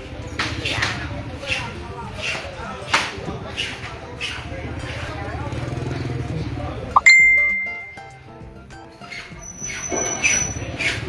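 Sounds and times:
bright bell ding: 7.0 - 8.2
thin steady high tone: 7.0 - 8.2.

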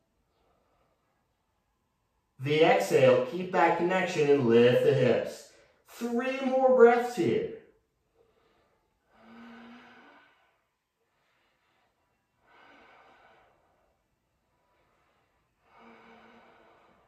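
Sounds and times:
man breathing: 0.0 - 1.8, 5.4 - 5.9, 8.0 - 17.0.

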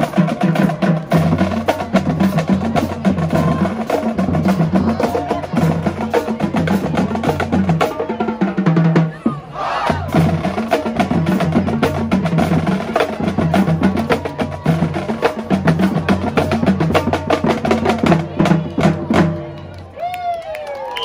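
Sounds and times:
snare and bass drums: 0.0 - 19.6.

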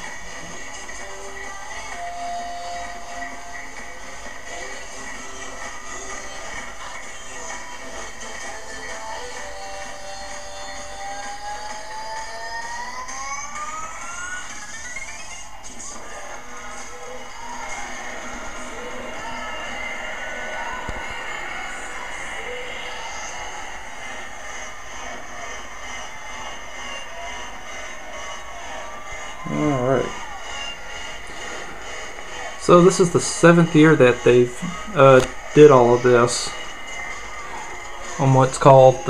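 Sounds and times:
music through tv speaker: 0.0 - 39.0
rising pitch sweep: 10.6 - 39.0.

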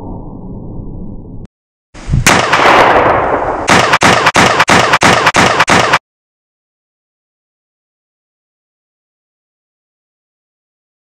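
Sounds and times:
sharp gunshot with echo: 2.2 - 6.0
rapid gunfire bangs: 2.3 - 6.0.

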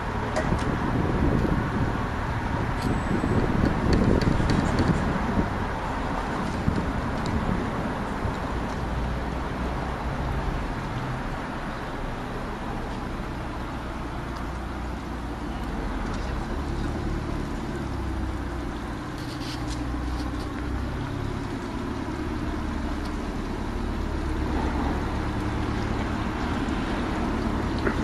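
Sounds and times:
boat engine humming: 0.0 - 28.0.

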